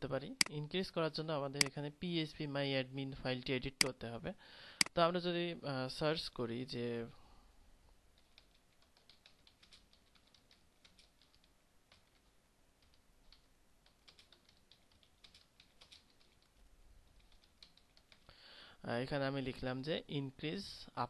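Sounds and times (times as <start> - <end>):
keyboard typing clicks: 8.2 - 16.5.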